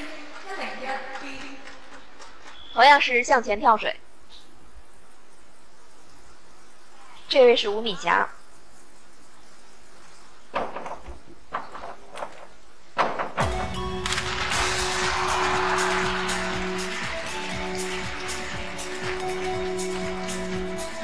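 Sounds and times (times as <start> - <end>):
crowd applause and cheering: 13.4 - 21.0
music playing: 13.4 - 21.0.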